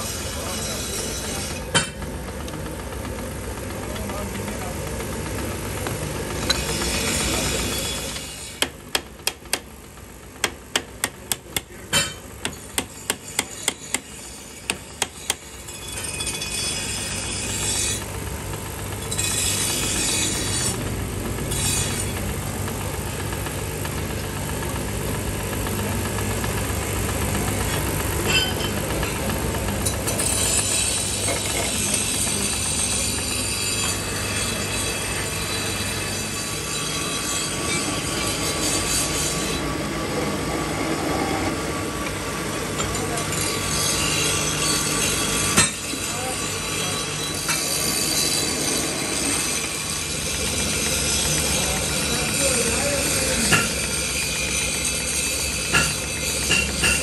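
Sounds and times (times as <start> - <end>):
metal lathe humming and clattering: 0.0 - 57.0.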